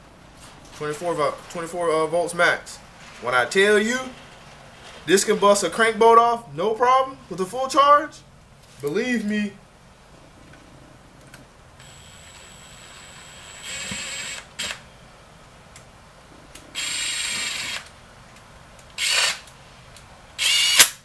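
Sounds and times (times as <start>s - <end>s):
cordless drill spinning bolts: 11.8s - 14.8s, 16.8s - 17.9s, 19.0s - 19.5s, 20.4s - 21.0s.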